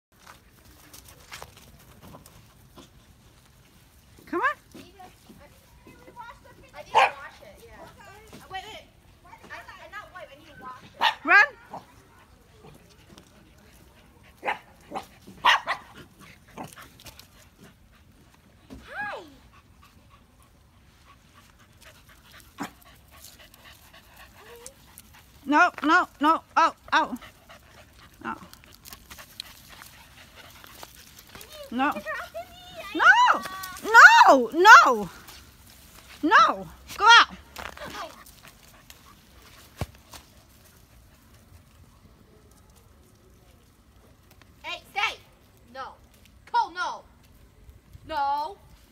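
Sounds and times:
small dogs barking and yipping: 0:06.8 - 0:07.4, 0:09.4 - 0:12.8, 0:14.3 - 0:16.8.

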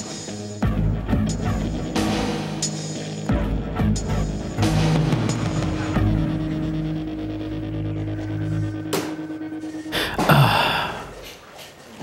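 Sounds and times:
low music tone: 0:00.0 - 0:11.4
man sighing heavily: 0:09.9 - 0:11.4.

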